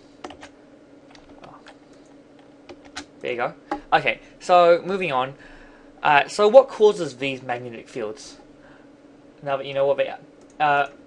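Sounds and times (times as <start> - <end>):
faint steady hum: 0.0 - 11.0
keyboard and mouse clicks: 0.2 - 3.1.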